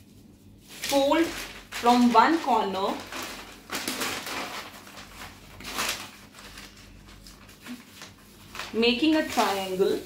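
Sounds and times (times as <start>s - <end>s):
newspaper rustling: 0.1s - 10.0s.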